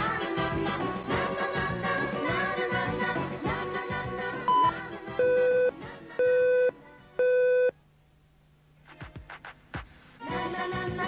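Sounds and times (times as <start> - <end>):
music: 0.0 - 7.7, 8.8 - 11.0
countdown beeps: 4.5 - 7.7.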